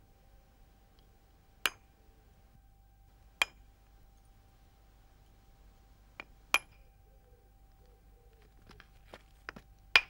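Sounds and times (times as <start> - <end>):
wood striking flint: 8.5 - 10.0.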